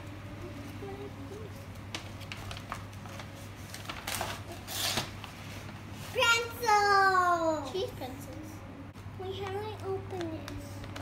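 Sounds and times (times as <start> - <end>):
paper bag and packaging rustling: 0.6 - 6.2.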